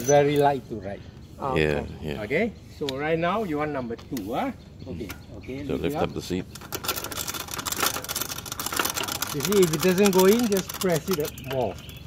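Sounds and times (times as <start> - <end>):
bike drivetrain clicking: 6.6 - 12.0.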